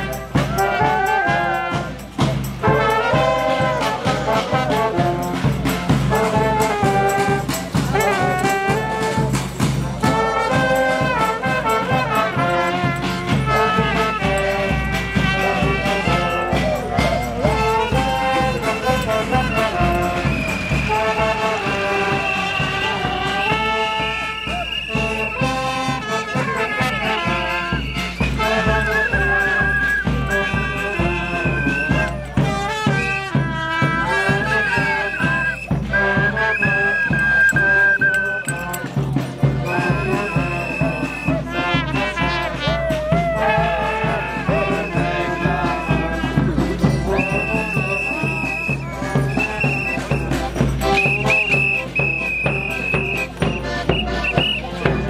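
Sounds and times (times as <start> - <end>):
bass drum beat: 0.0 - 55.0
brass band playing: 0.0 - 55.0.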